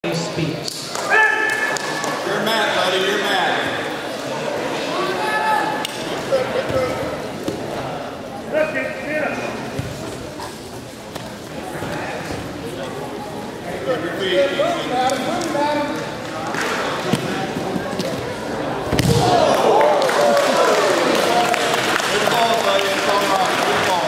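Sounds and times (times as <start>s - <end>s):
people shouting: 1.1s - 1.8s, 19.0s - 21.5s.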